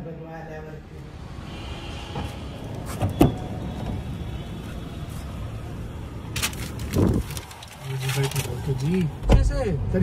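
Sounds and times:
car engine rumbling: 2.2s - 10.0s.

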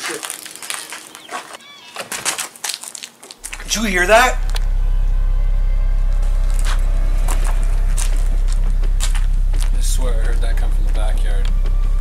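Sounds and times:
loud low drone: 3.4s - 12.0s.

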